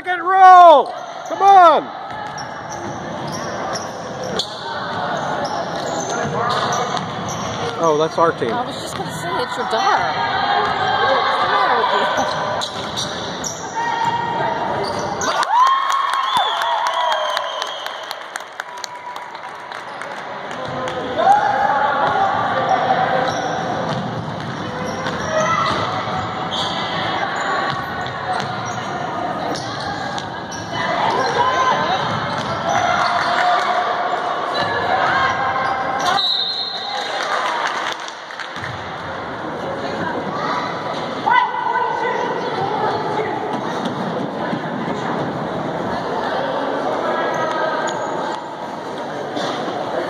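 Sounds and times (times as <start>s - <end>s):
spectators talking: 0.0s - 15.4s, 19.4s - 50.0s
sneaker squeaks: 2.0s - 9.1s, 11.7s - 15.4s, 22.1s - 33.4s, 34.1s - 37.1s, 47.2s - 48.6s
basketball bouncing: 23.8s - 26.2s.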